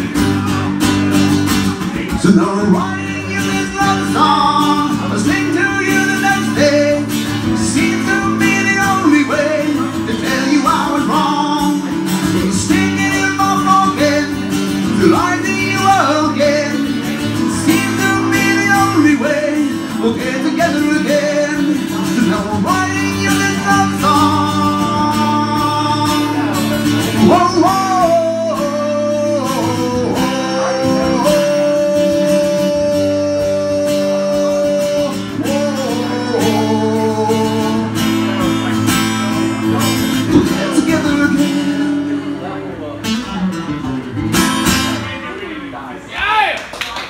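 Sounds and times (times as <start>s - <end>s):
man singing: 0.0s - 43.5s
acoustic guitar strumming: 0.0s - 45.7s.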